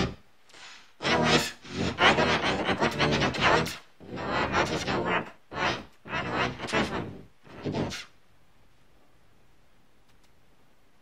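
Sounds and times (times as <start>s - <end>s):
person speaking: 0.0s - 8.2s.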